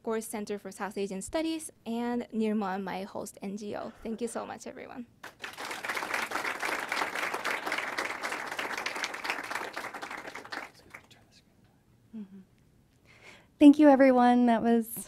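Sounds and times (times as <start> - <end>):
audience applauding: 5.2 - 11.2.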